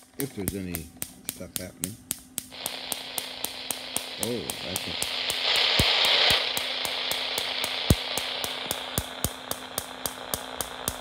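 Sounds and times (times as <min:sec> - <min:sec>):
low hum: 0:00.0 - 0:11.0
sharp ticks: 0:00.1 - 0:11.0
louder clicks: 0:00.4 - 0:11.0
radio static hiss: 0:01.6 - 0:11.0.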